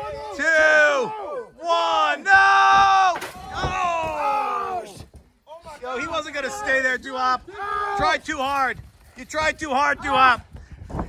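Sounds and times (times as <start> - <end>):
man shouting: 0.0 - 5.0, 5.7 - 8.7.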